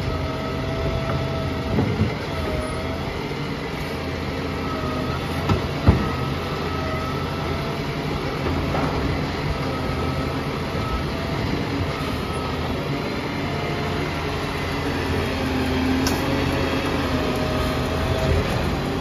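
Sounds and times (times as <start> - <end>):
diesel engine running: 0.0 - 19.0
hydraulic whine: 0.0 - 19.0.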